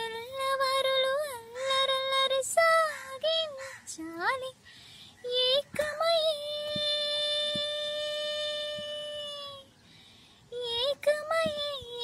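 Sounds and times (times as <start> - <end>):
woman singing unaccompanied: 0.0 - 9.8, 10.4 - 12.0.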